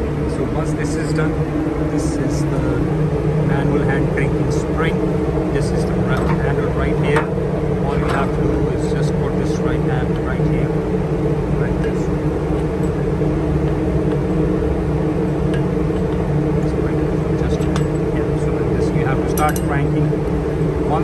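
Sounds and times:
low held tones: 0.0s - 21.0s
machinery hum: 0.0s - 21.0s.

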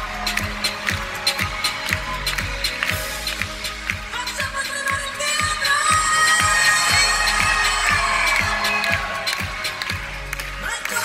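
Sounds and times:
steady kick drum: 0.0s - 10.5s
live pop band playing: 0.0s - 11.0s.

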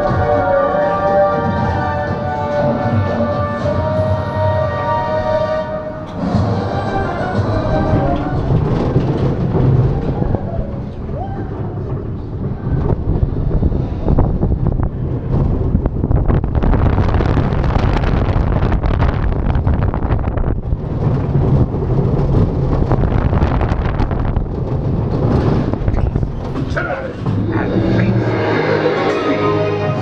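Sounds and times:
roller coaster rattling and clacking: 0.0s - 30.0s
roller coaster wheels rumbling: 0.0s - 30.0s
wind buffeting microphone: 0.0s - 30.0s.

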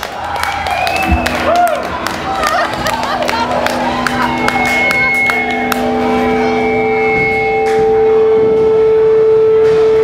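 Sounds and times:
high whistling amplifier feedback: 0.6s - 1.7s, 3.9s - 10.0s
fainter steady tones: 2.6s - 10.0s.

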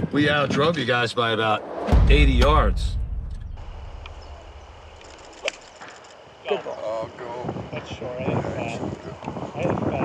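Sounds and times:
man's voice: 0.1s - 3.0s
low rumble: 1.5s - 5.4s.

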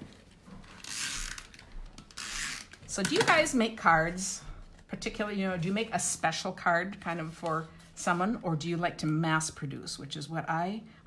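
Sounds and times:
tape runner ratcheting and rasping: 0.6s - 2.8s.

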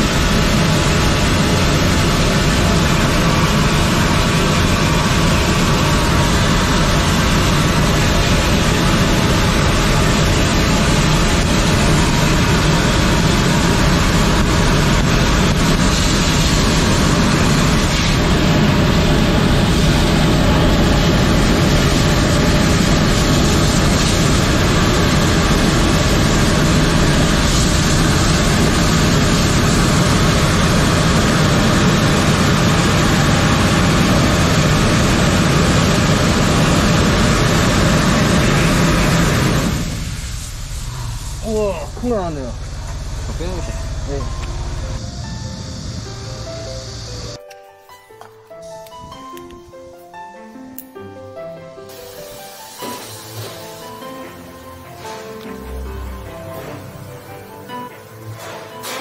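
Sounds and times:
pump drone: 0.0s - 47.5s, 50.8s - 59.0s
water spray rushing: 51.9s - 54.1s.

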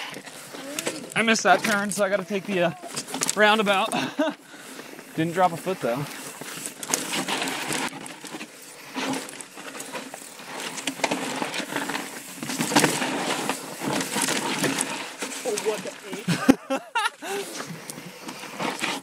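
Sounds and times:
mountain bike rattling over rocks: 0.0s - 19.0s.

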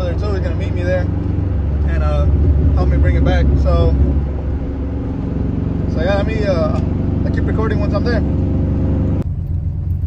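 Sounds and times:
engine and road noise drone: 0.0s - 10.0s.

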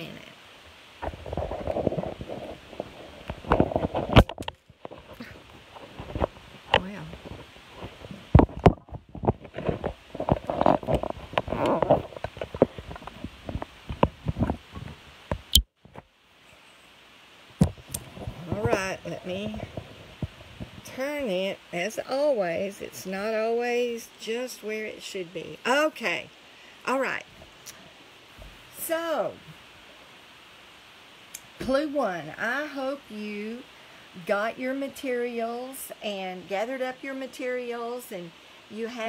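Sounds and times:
handling noise rubbing on microphone: 1.0s - 15.3s, 17.7s - 21.5s.

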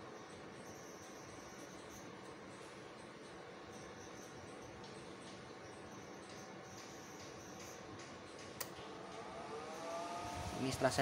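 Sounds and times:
inverter whine and hum: 0.0s - 11.0s.

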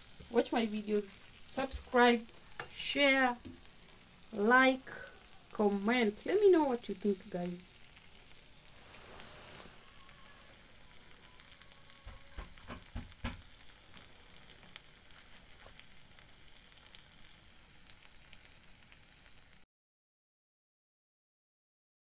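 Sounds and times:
food sizzling in a frying pan: 0.0s - 19.7s.

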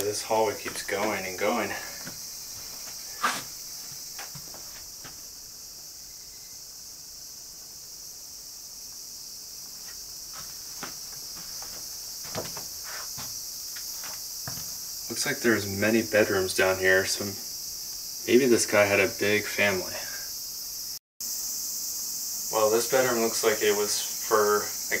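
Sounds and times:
insects chirring: 0.0s - 25.0s
footsteps on wooden floor: 0.5s - 5.2s, 9.8s - 14.9s.

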